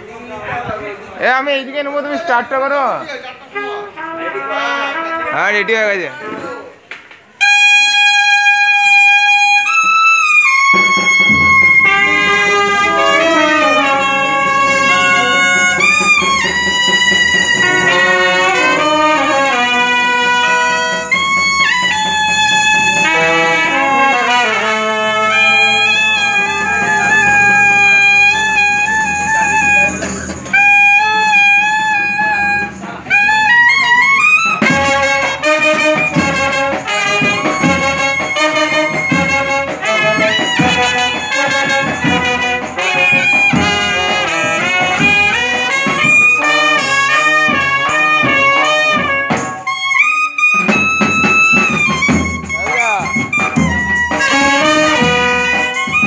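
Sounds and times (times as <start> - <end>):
brass band playing: 3.4 - 6.6, 7.3 - 56.0.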